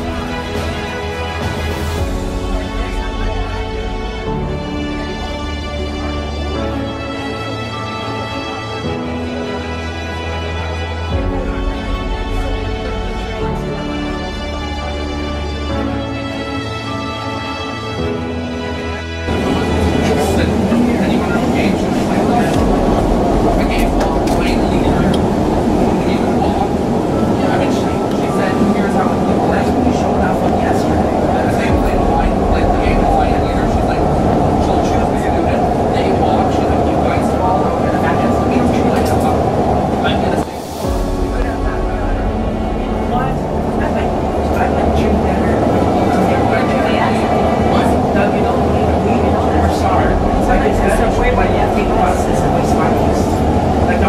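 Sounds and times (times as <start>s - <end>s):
train wheels rumbling on rails: 19.3s - 54.0s.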